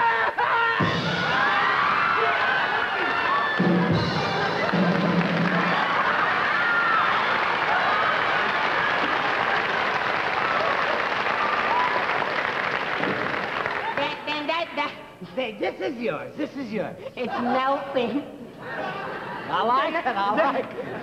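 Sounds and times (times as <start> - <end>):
audience laughing and applauding: 0.0 - 14.2, 18.6 - 21.0.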